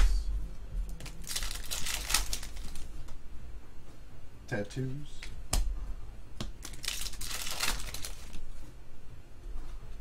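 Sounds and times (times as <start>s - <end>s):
cards rustling: 1.0s - 2.9s, 6.6s - 8.4s.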